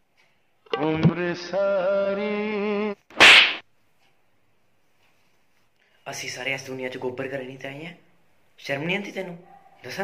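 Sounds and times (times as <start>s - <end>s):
quick loud swish: 3.2s - 3.6s.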